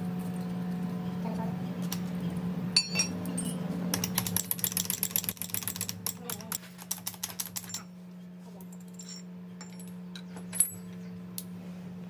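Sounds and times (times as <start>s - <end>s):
steady low hum: 0.0s - 12.0s
metal parts clicking and clinking: 2.8s - 7.9s, 8.6s - 10.9s.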